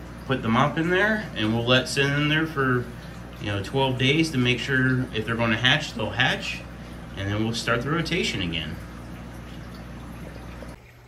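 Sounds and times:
aquarium water trickling: 0.0 - 11.0
low steady hum: 0.0 - 11.0.

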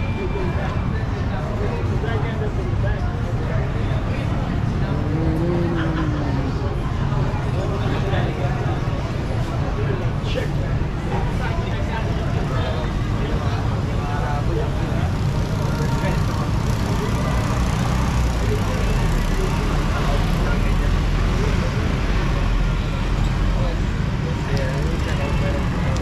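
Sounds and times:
traffic engine rumble: 0.0 - 26.0
indistinct voices: 4.0 - 8.2
truck driving by: 4.3 - 7.7.

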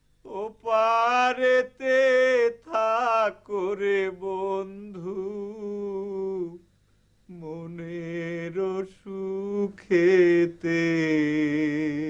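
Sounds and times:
man singing a long note: 0.2 - 6.6, 7.3 - 12.0.

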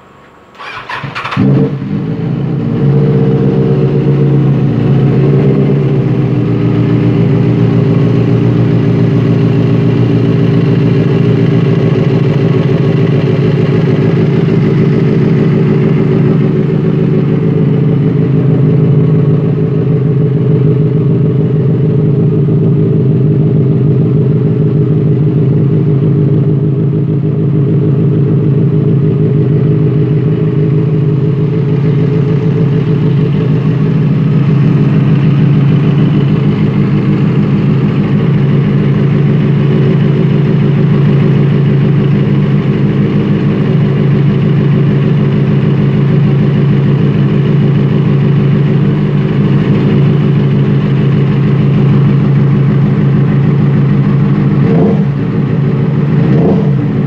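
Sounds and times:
motorcycle engine revving and idling: 0.0 - 57.0
motorcycle starter cranking: 0.5 - 1.6.

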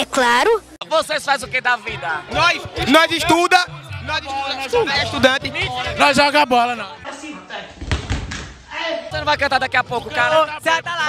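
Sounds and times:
body thud on tiled floor: 7.8 - 8.6.

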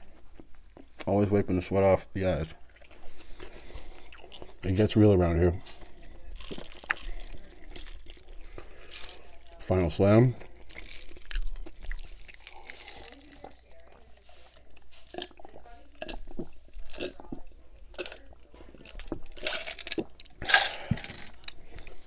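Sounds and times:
gulping and swallowing: 6.2 - 9.0, 14.7 - 19.3
wet mouth clicks: 6.5 - 8.6.

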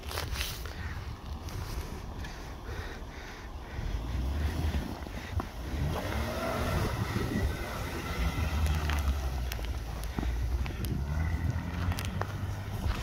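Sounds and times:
car engine running under load: 0.0 - 13.0.

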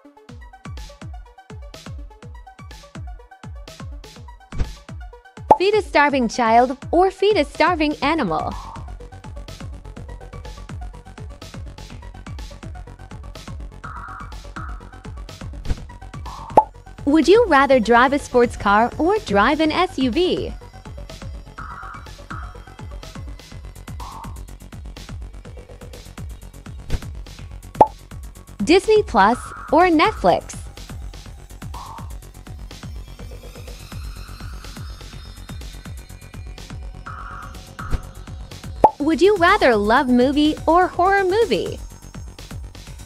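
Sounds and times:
rising pop sound effect: 5.5 - 5.8, 16.3 - 16.7, 31.8 - 32.1, 38.8 - 39.0
electronic music with fast beat: 7.8 - 43.0.

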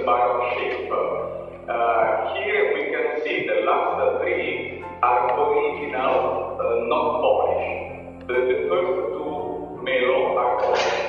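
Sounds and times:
background music: 0.0 - 11.0
man talking: 0.0 - 11.0
steady low hum: 0.0 - 11.0.

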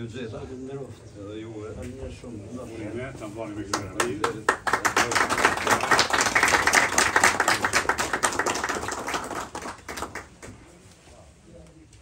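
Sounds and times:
audience applauding: 3.7 - 10.6.

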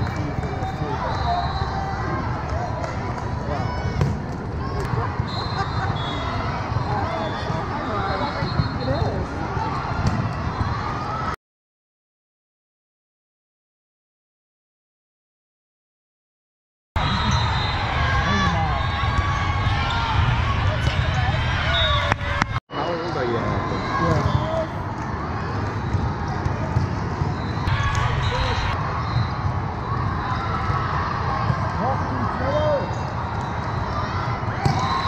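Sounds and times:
crowd and player chatter: 0.0 - 11.4, 17.0 - 35.0.

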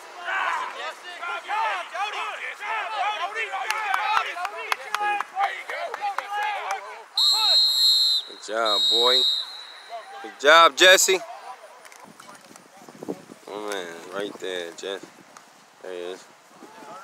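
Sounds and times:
whistle blast: 7.2 - 10.0.

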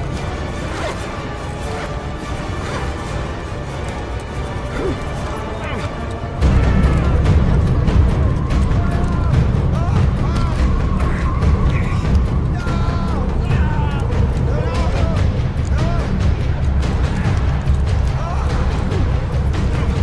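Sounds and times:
film score music: 0.0 - 20.0
men crying out: 4.6 - 20.0
deep steady rumble: 6.1 - 20.0.

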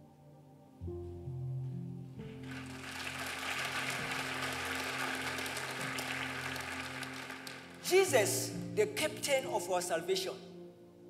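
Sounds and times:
keyboard sustained chords: 0.0 - 11.0
congregation clapping and applause: 2.2 - 8.6.

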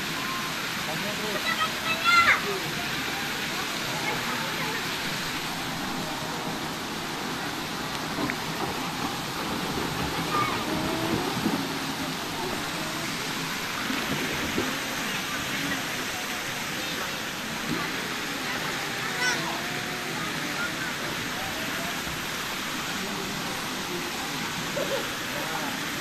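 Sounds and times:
churning pool water: 0.0 - 26.0
faint voices: 0.0 - 26.0.

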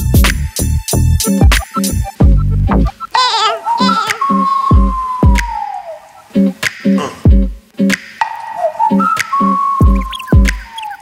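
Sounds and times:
electronic music with steady beat: 0.0 - 11.0.

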